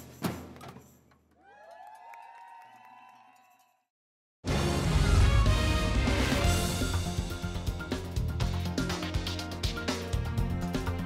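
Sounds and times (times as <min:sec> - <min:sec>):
crowd cheering: 0:01.4 - 0:03.8.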